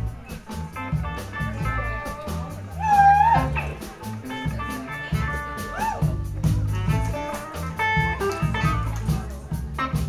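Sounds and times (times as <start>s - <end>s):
electric guitar lead: 0.0s - 10.0s
live blues band playing: 0.0s - 10.0s.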